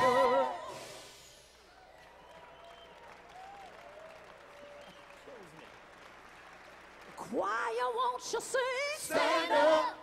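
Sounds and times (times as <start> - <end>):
audience applause: 1.7 - 7.4.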